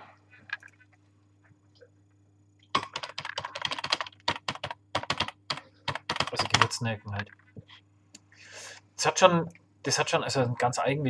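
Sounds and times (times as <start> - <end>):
faint low hum: 0.0 - 11.0
rapid keyboard typing: 2.7 - 7.5.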